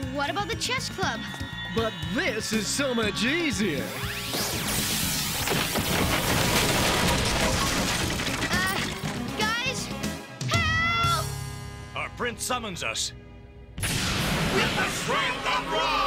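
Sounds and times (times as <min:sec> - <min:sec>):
music: 0:00.0 - 0:06.0, 0:07.5 - 0:16.0
crackling energy beam blast: 0:04.1 - 0:06.6, 0:13.8 - 0:15.0
crashing destruction: 0:04.6 - 0:09.4.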